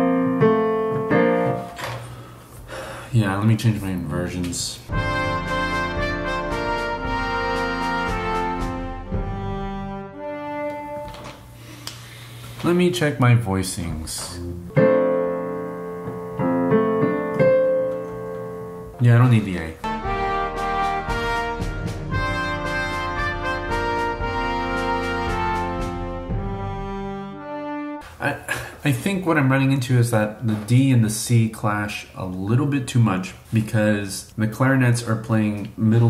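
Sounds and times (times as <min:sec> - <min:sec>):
piano chord on keyboard: 0:00.0 - 0:01.8, 0:04.9 - 0:11.3, 0:14.3 - 0:27.6.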